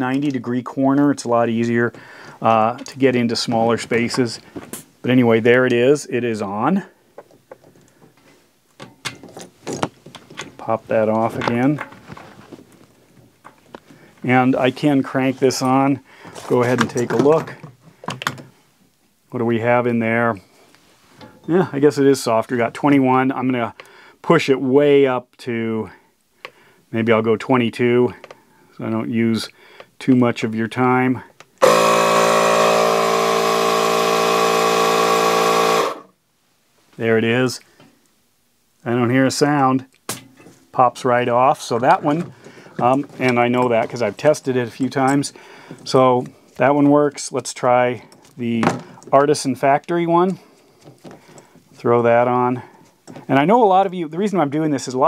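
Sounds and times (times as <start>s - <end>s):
tyre inflator compressor running: 31.6s - 36.1s.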